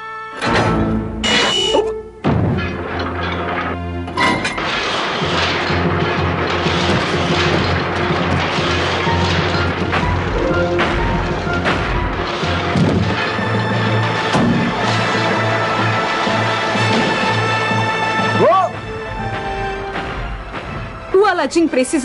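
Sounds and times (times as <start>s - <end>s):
dramatic music: 0.3s - 22.0s
machinery clanking: 0.4s - 22.0s
loud crashing impacts: 2.2s - 21.2s.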